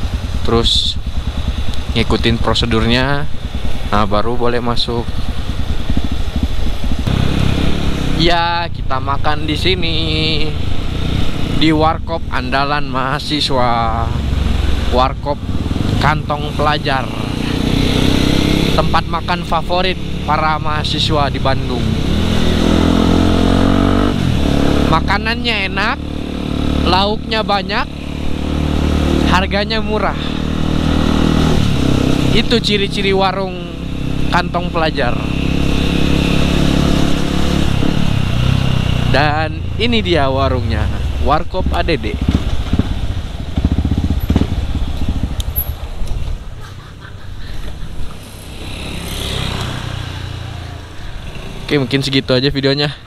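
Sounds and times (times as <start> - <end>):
motorcycle engine running: 0.0 - 12.0, 13.7 - 46.6, 47.6 - 52.1.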